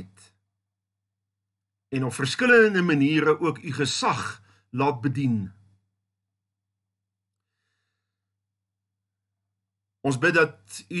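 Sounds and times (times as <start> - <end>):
faint breath: 7.4 - 8.4.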